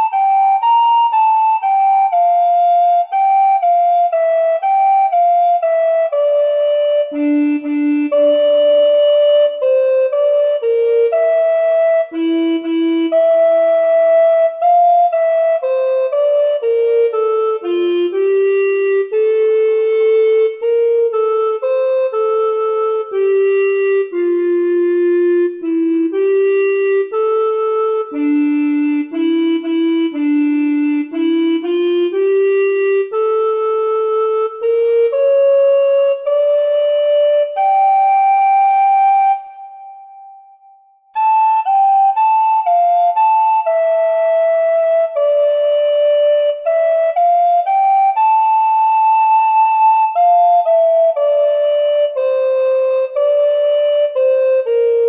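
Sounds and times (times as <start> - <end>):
tenor recorder slow melody: 0.0 - 55.0.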